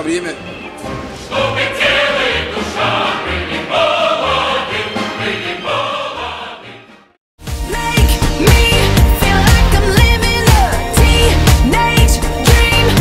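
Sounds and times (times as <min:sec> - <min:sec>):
choir singing long phrases: 0:01.1 - 0:07.1.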